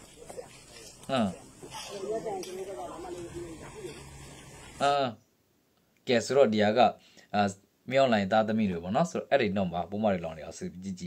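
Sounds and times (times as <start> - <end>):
people talking and calling: 0.0 - 5.0.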